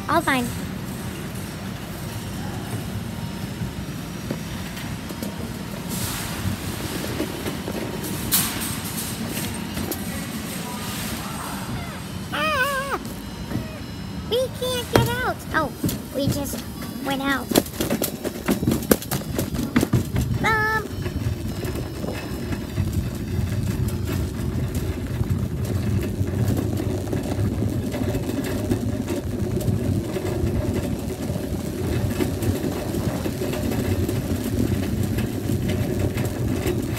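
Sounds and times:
shopping cart wheels rattling: 0.1 - 36.9.

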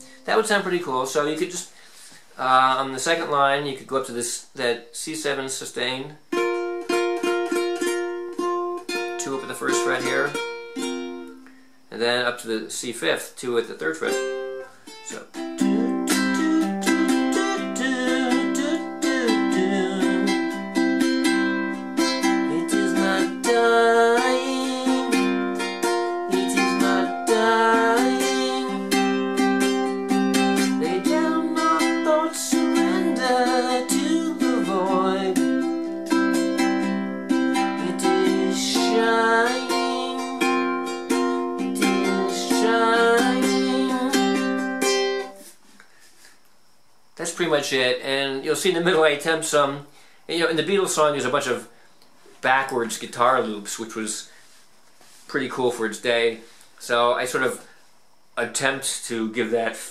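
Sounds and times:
ukulele strummed: 6.2 - 11.6, 13.6 - 45.5.

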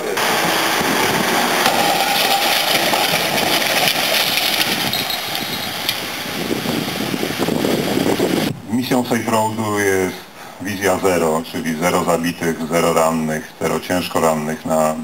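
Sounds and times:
test car rushing: 0.0 - 8.5.

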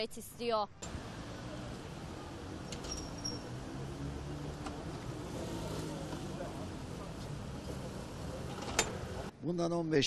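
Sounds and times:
car driving slowly past: 0.9 - 9.3
motor scooter driving past: 0.9 - 9.3.

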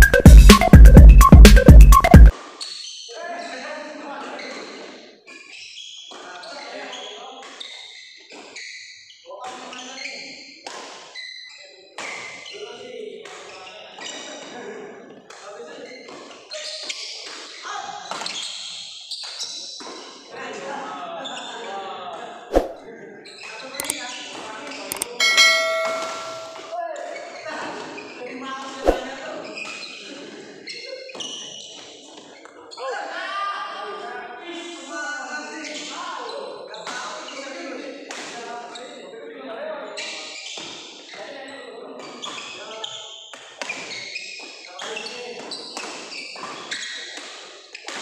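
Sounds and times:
voices echoing in hall: 3.0 - 5.3, 6.1 - 7.6, 11.5 - 16.9, 20.3 - 44.0
notification bell ding: 25.0 - 26.7.

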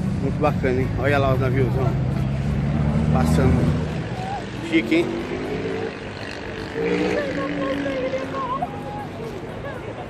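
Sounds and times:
passers-by talking: 0.0 - 10.0.

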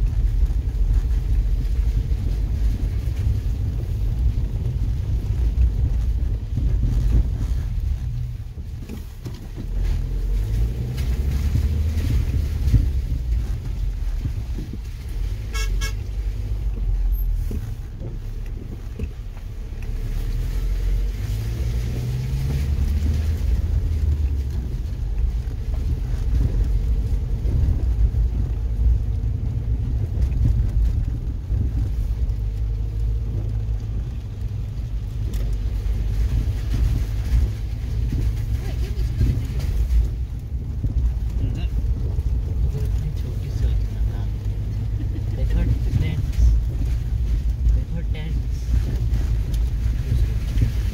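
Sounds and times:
car engine and tyre rumble: 0.0 - 50.9
car horn toot: 15.4 - 16.2.

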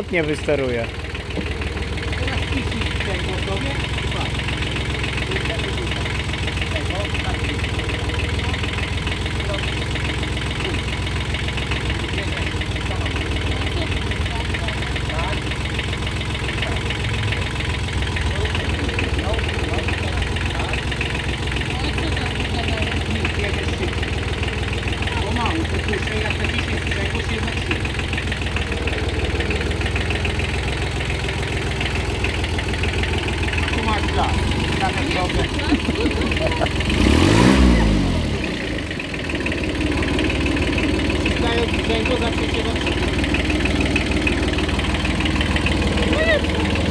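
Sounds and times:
small diesel engine idling: 0.0 - 46.9.

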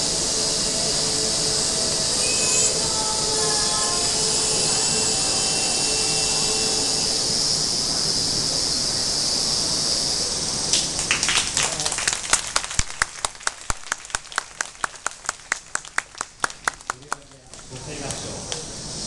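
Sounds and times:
audience applause: 10.7 - 18.7
person clapping steadily: 10.7 - 18.7.

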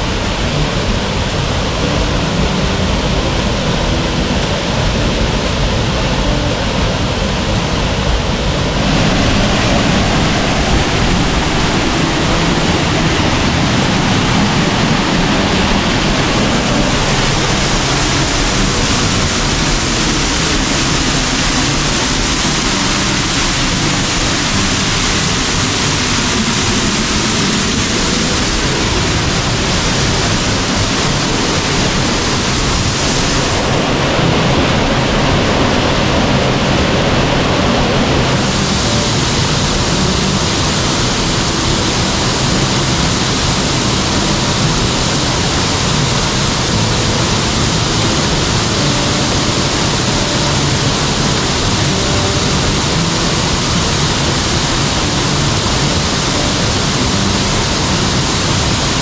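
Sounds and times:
waterfall rushing onto rock: 0.0 - 59.0.

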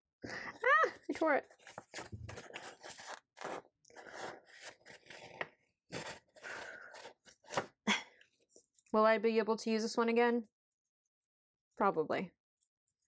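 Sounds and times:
paper sticker rustling and scraping: 1.0 - 7.6.

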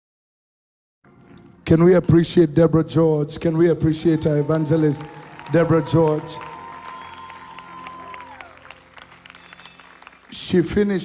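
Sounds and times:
congregation applauding: 3.8 - 11.0.

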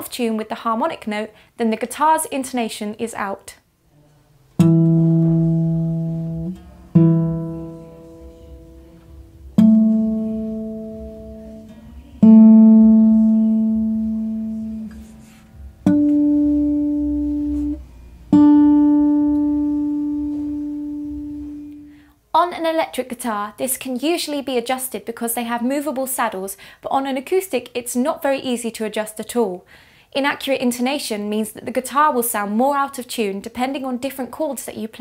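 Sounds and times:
acoustic guitar plucked notes: 4.5 - 22.0.

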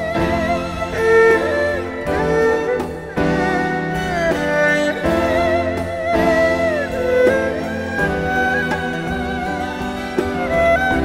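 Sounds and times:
erhu sliding melody: 0.0 - 11.0
string orchestra: 0.0 - 11.0.

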